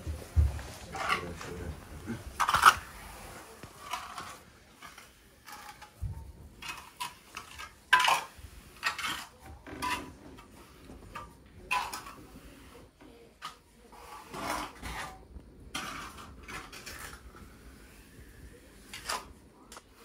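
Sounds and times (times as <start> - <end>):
trowel scraping wet compound: 0.9 - 6.0, 6.6 - 19.9.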